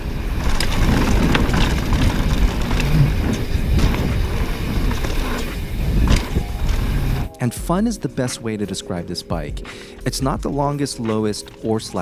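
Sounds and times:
bike clicking and rattling: 0:00.0 - 0:07.3
wind on microphone: 0:00.0 - 0:07.3
bike tyres rumbling on dirt: 0:00.0 - 0:08.0.

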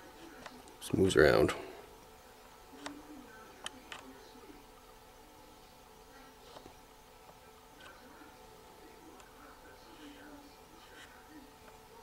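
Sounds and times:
steady low hum: 0:00.0 - 0:12.0
distant murmur of voices: 0:01.5 - 0:12.0.

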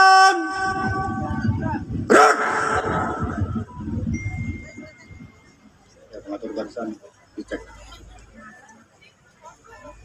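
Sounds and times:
person shouting over loudspeaker: 0:00.0 - 0:03.6.

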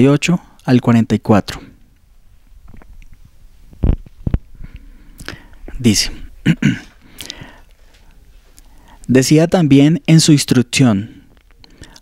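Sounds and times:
microphone handling clicks: 0:02.6 - 0:05.8.

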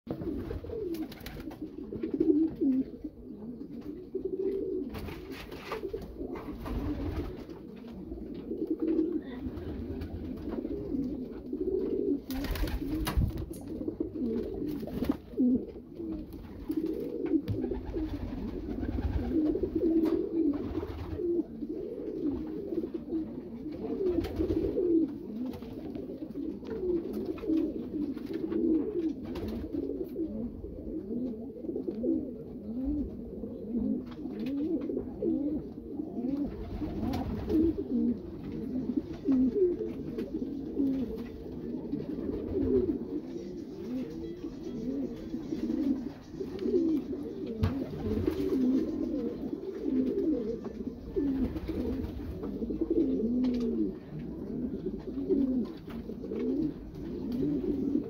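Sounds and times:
pigeons cooing: 0:00.1 - 0:58.0.

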